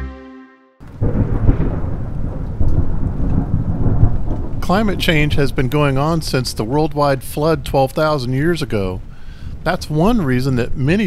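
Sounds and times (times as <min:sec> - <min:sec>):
steady rain: 0:00.8 - 0:11.0
thunder rumbling: 0:00.8 - 0:11.0.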